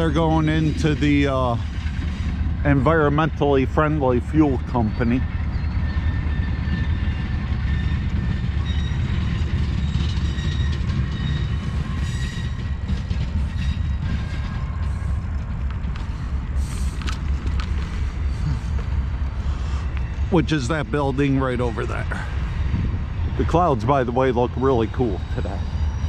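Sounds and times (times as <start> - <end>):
train clicks on track: 0.0 - 22.5
freight train rumbling: 0.0 - 26.0.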